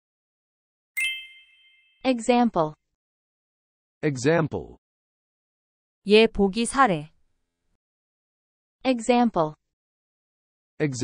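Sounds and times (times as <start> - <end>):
bright chime ding: 1.0 - 2.0.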